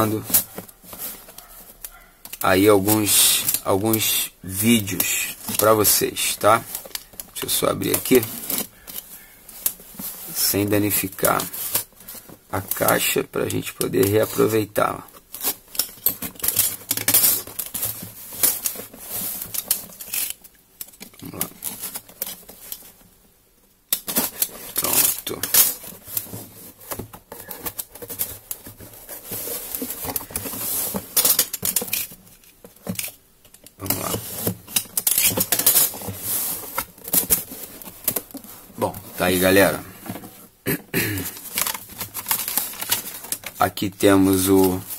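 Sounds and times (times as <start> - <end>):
cardboard scraping and rustling: 0.0 - 20.4, 21.0 - 23.1, 24.0 - 40.6, 41.2 - 44.9.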